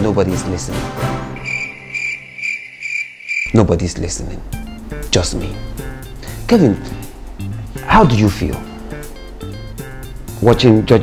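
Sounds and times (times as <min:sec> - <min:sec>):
cricket chirps: 0:01.4 - 0:03.6.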